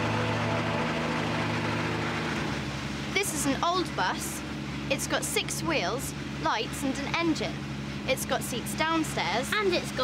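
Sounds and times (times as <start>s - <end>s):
bus engine humming: 0.0s - 10.0s.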